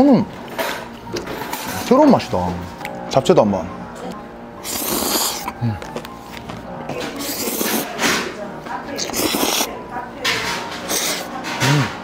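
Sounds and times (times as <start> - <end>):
soft background music: 0.0 - 12.0
person slurping noodles: 4.6 - 5.7, 7.2 - 7.9, 9.0 - 9.7, 10.9 - 12.0.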